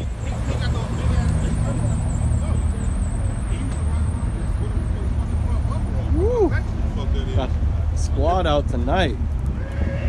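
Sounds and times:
people chatting: 0.0s - 9.2s
car engines rumbling: 0.0s - 10.0s.

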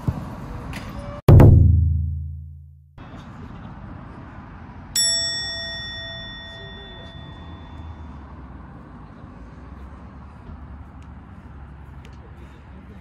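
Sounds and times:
outdoor background noise: 0.0s - 1.4s, 3.0s - 13.0s
bright metallic ding: 5.0s - 8.1s.

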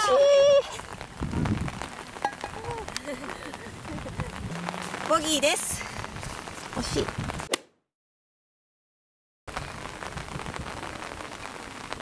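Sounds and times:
rain falling steadily: 0.0s - 7.5s, 9.5s - 12.0s.

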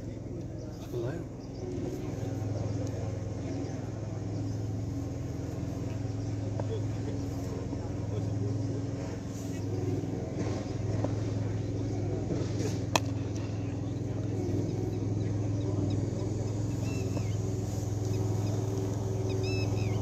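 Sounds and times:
faint voices: 0.0s - 20.0s
steady low hum: 0.0s - 20.0s
cricket bat striking ball: 12.9s - 13.2s.

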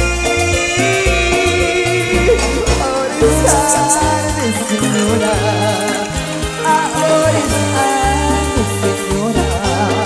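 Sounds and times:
live band playing: 0.0s - 10.0s
man singing: 0.0s - 10.0s.

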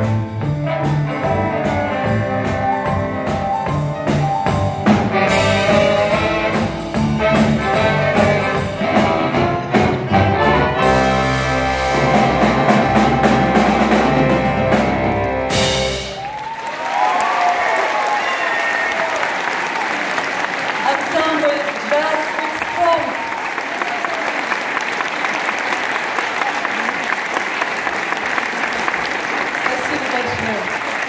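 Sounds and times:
jazz band final chord: 4.6s - 16.2s
audience applauding: 11.9s - 31.0s.

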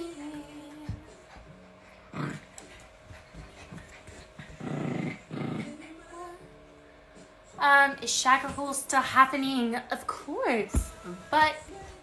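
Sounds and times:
dog growling low: 2.1s - 2.7s, 4.4s - 6.2s.

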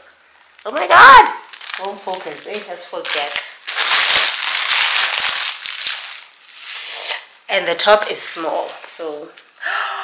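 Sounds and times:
plastic bag crinkling: 0.4s - 6.5s.

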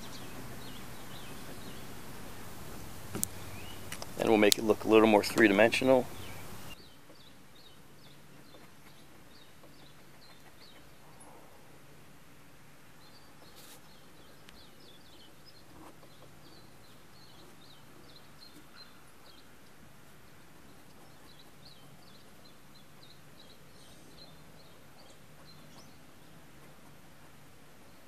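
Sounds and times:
faint birdsong chirps: 0.0s - 28.0s
faint low hum: 0.0s - 28.0s
outdoor background noise: 0.0s - 28.0s.

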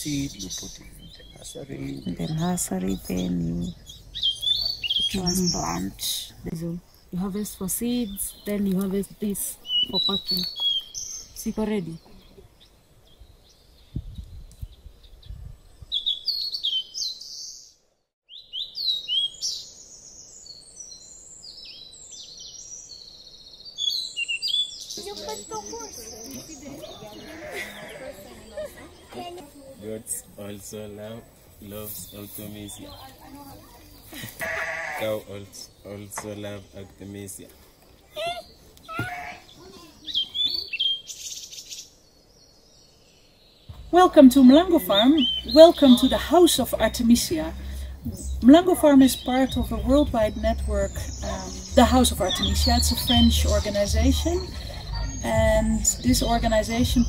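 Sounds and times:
birds chirping and singing: 0.0s - 57.0s
low thuds: 43.7s - 57.0s.

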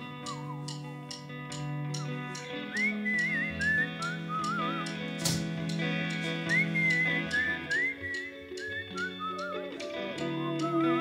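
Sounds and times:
guitar chords: 0.0s - 11.0s
whistled melody: 0.0s - 11.0s.

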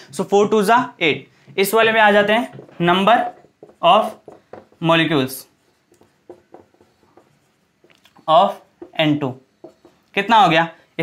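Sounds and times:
marker pen writing on whiteboard: 1.5s - 10.4s.

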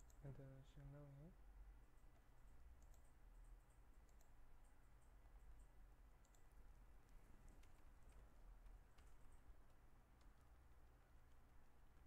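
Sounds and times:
computer keys clicking: 0.0s - 0.4s, 1.8s - 12.0s.

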